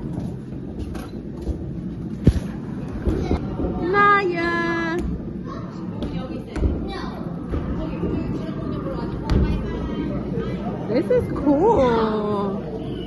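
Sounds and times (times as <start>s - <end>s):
background murmur of voices: 2.1s - 13.0s.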